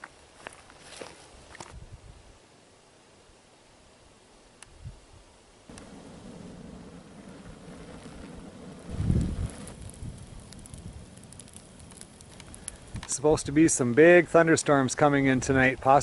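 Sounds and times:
fire crackling: 5.6 - 16.0
fire rushing flame: 5.7 - 15.9.

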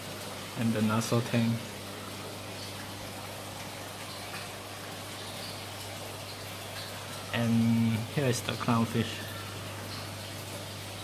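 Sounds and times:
low pump hum: 0.0 - 11.0
water splashing and trickling: 0.0 - 11.0.

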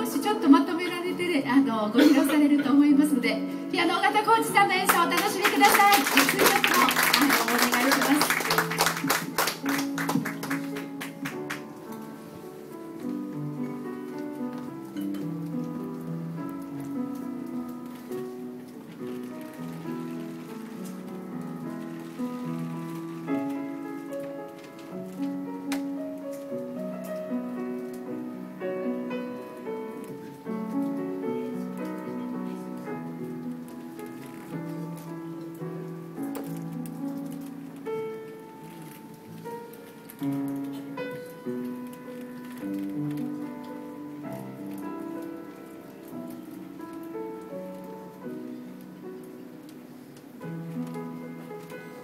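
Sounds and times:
solo piano slow melody: 0.0 - 52.0.

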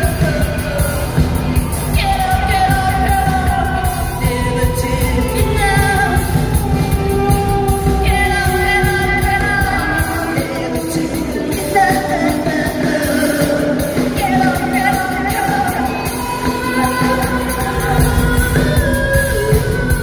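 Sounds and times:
drums: 0.0 - 20.0
electric guitar: 0.0 - 20.0
woman singing into a microphone: 0.0 - 20.0.

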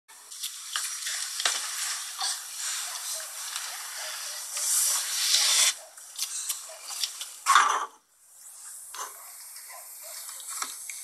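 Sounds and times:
packaging crinkling and rustling: 0.2 - 5.6.

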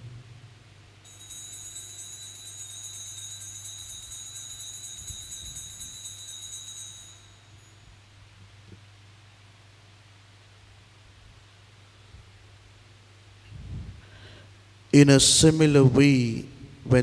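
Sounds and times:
low steady hum: 0.0 - 17.0
small bells jingling: 1.0 - 8.0.

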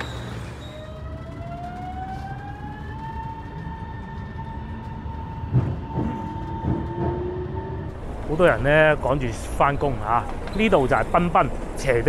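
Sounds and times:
train carriage running rumble: 0.0 - 12.0
train traction motors whining: 0.0 - 12.0.

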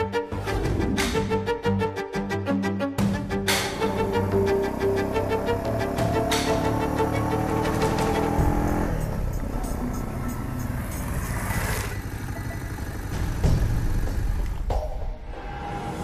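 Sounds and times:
background music with held strings: 0.0 - 11.2
motor vehicle running: 3.4 - 14.8.

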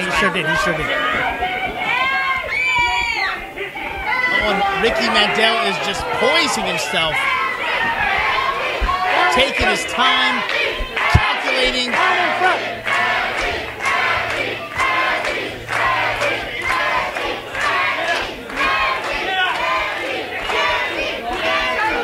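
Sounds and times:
crowd chanting in unison: 0.0 - 22.0.

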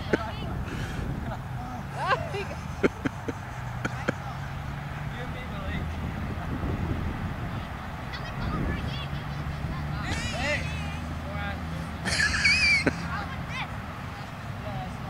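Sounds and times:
children shrieking and yelling: 8.0 - 11.2.

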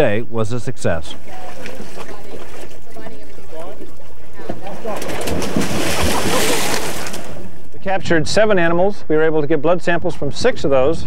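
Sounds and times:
water sloshing and churning: 1.1 - 7.8.

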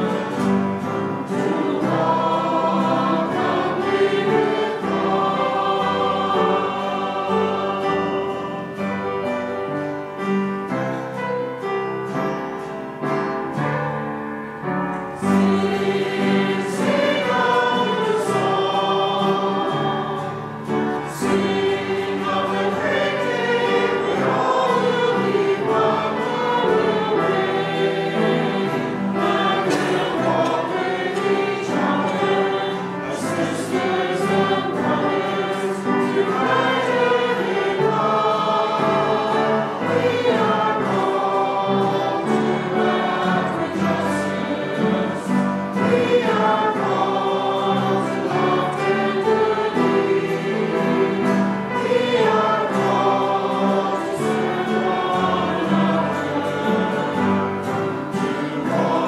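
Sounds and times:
choir singing sacred music: 0.0 - 59.0.

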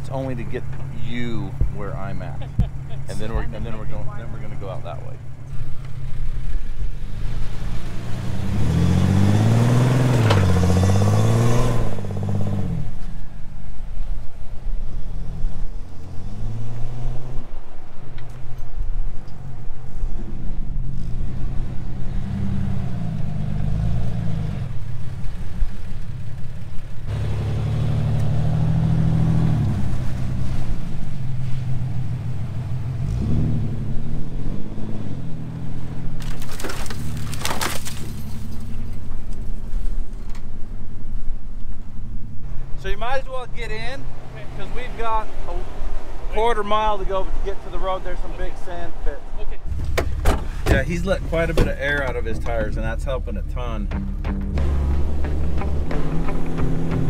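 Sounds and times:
engines revving under load: 0.0 - 40.0, 41.0 - 57.0.

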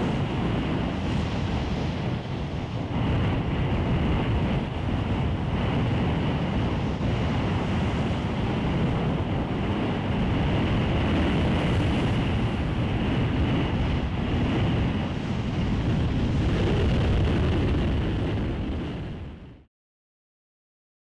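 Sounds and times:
surf: 0.0 - 19.3
wind: 0.0 - 19.7.

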